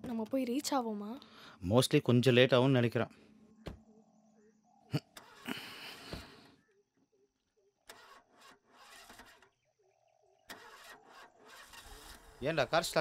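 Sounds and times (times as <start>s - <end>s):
car starter cranking engine: 7.9s - 9.4s, 10.5s - 12.6s.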